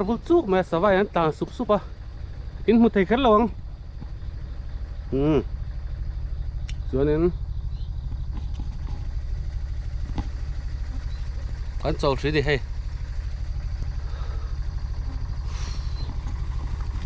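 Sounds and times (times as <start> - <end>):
engine idling: 0.0 - 17.0.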